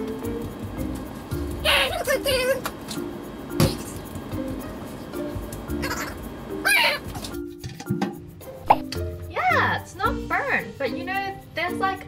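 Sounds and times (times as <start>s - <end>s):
background music held notes: 0.0s - 12.0s
short pop: 8.7s - 9.0s.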